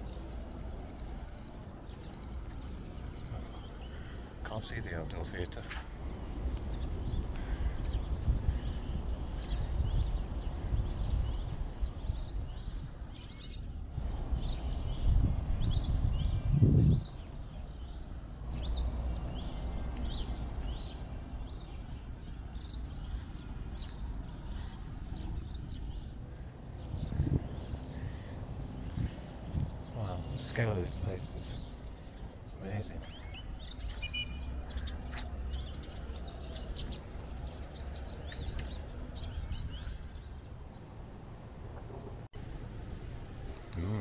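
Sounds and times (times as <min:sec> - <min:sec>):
birds chirping: 0:00.0 - 0:44.0
low rumbling background noise: 0:00.0 - 0:44.0.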